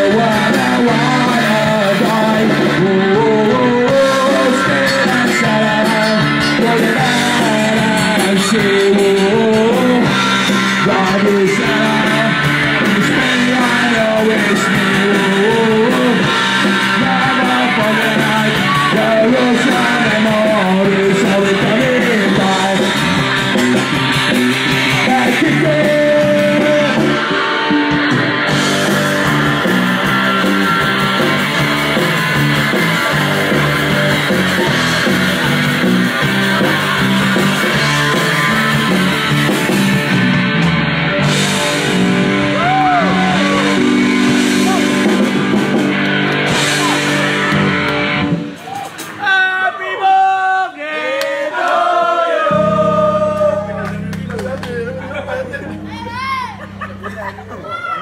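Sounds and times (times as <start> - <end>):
punk band playing live: 0.0 - 50.2, 52.4 - 58.0
people shouting: 42.5 - 45.0, 46.6 - 47.1, 48.6 - 53.8, 55.9 - 56.6, 57.5 - 58.0.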